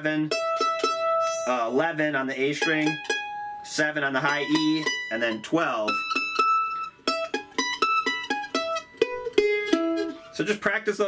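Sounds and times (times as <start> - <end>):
mandolin picked notes: 0.0 - 11.0.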